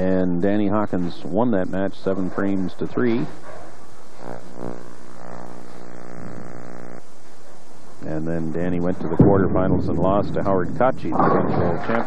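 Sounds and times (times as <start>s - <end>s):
steady buzzing hum: 0.0s - 12.0s.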